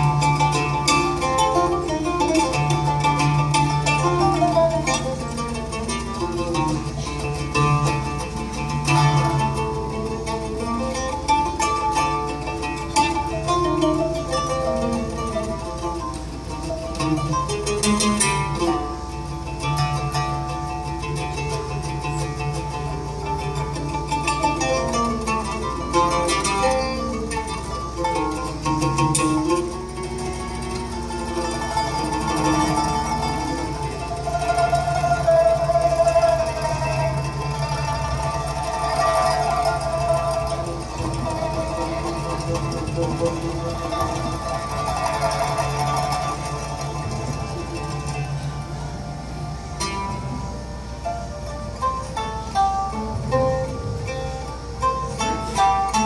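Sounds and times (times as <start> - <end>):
plucked string duet: 0.0 - 56.0.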